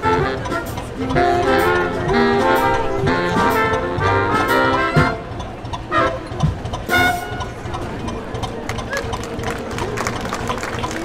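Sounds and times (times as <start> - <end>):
brass blast: 0.0 - 6.2, 6.9 - 7.6
crowd murmuring: 0.0 - 11.0
scattered clapping: 3.3 - 11.0.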